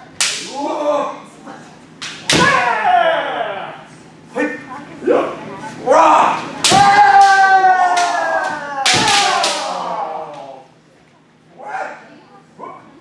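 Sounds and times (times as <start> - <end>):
bamboo sword striking armor: 2.2 - 2.7, 6.6 - 7.4, 8.9 - 9.7
person's long kiai shout: 2.3 - 3.7, 5.9 - 10.6.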